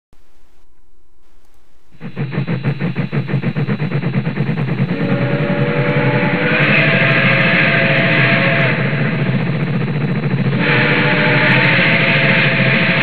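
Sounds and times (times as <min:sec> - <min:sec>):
fast rhythmic pulsing: 0:01.3 - 0:13.0.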